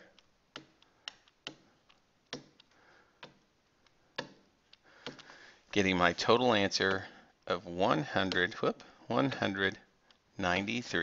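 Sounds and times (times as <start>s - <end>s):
stylus tapping on tablet screen: 0.0s - 5.4s, 8.2s - 8.9s.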